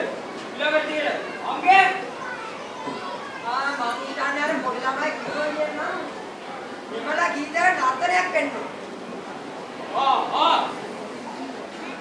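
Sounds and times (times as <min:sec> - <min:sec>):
children's voices: 0:00.0 - 0:06.9, 0:10.7 - 0:12.0.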